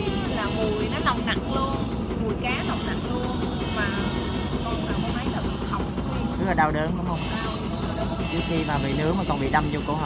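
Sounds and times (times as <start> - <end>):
woman speaking: 0.0 - 6.1
boat engine humming: 0.0 - 10.0.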